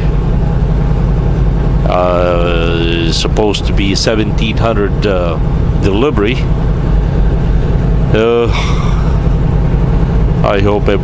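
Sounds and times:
truck engine and road drone: 0:00.0 - 0:11.0.

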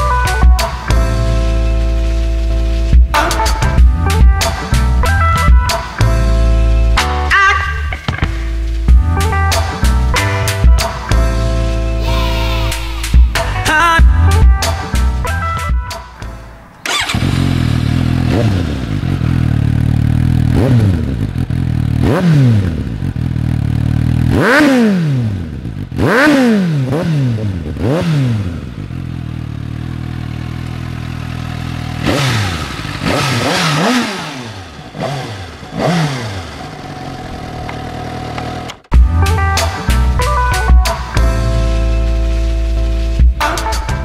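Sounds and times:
loud music: 0:02.8 - 0:06.0, 0:07.0 - 0:16.6
motorcycle engine starting and idling: 0:16.7 - 0:38.9.

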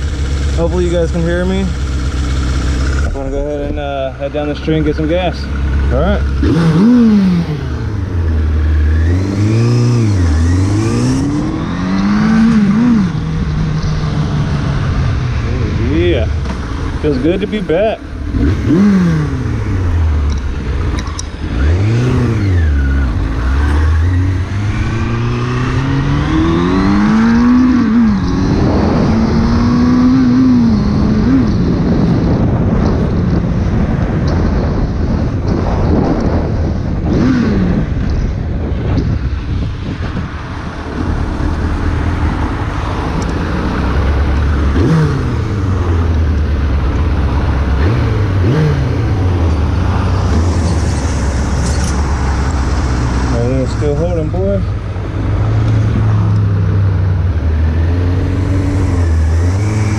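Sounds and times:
motorcycle engine accelerating: 0:00.0 - 0:59.9
wind and road noise: 0:00.0 - 0:59.9.

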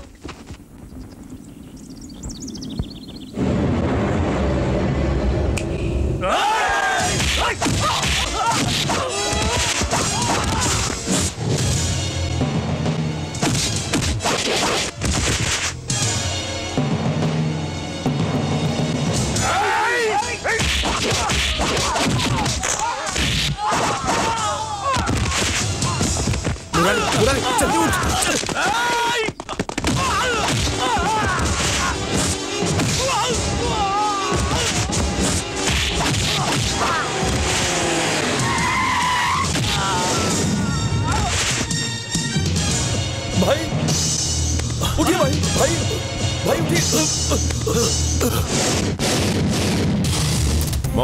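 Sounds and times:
tyres skidding and squealing: 0:36.0 - 0:40.6.

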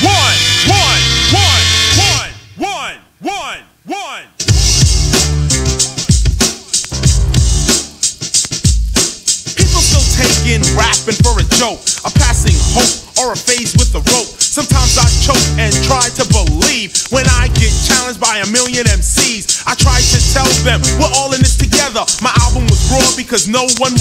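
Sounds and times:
heavy bass beat: 0:00.0 - 0:02.4, 0:04.4 - 0:24.0
person rapping: 0:00.0 - 0:04.4, 0:05.7 - 0:07.0, 0:09.5 - 0:24.0
hip-hop music: 0:00.0 - 0:24.0.

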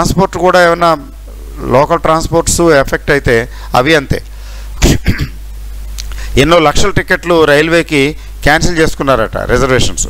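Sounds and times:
man clearing his throat: 0:04.8 - 0:05.4.

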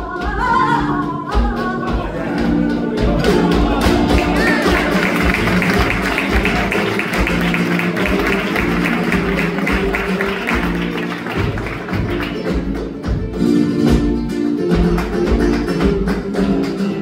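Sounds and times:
flamenco guitar playing: 0:00.0 - 0:17.0
rhythmic handclaps: 0:00.0 - 0:17.0.

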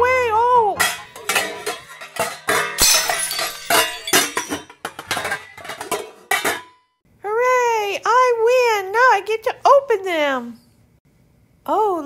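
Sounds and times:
clattering clinking knocks: 0:00.8 - 0:06.8.

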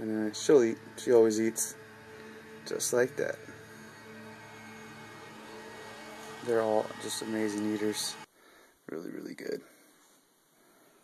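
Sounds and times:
faint low drone: 0:00.0 - 0:08.3.

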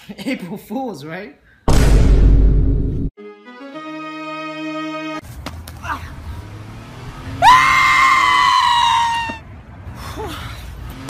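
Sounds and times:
person screaming: 0:07.4 - 0:09.4.

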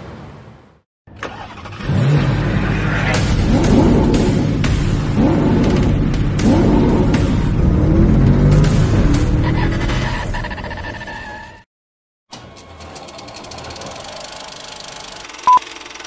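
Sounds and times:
car engine revving: 0:01.3 - 0:10.4.

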